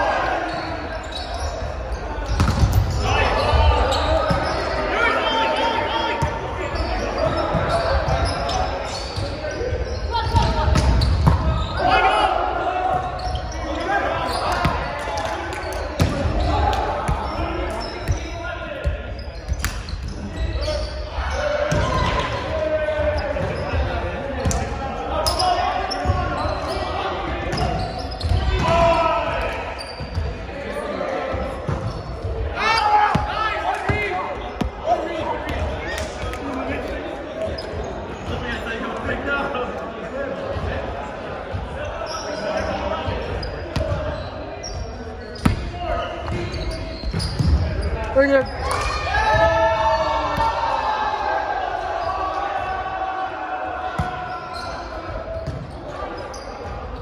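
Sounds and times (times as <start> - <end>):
players calling out: 0.0 - 39.6.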